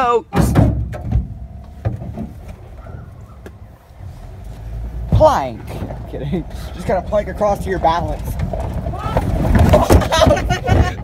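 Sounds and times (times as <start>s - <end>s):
truck engine and tyre rumble: 0.0s - 11.0s.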